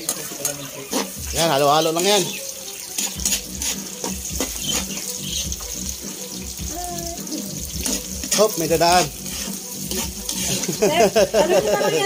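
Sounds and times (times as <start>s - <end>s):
metal ladle scraping wok: 0.0s - 5.2s, 7.8s - 11.1s
onion and garlic sizzling in oil: 0.0s - 12.0s.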